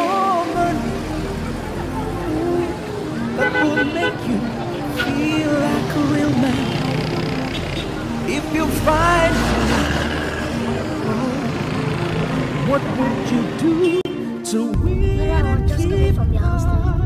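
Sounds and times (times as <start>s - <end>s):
crowd chatter: 0.0s - 8.4s
road rumble: 0.0s - 14.2s
car engine driving away: 5.4s - 13.8s.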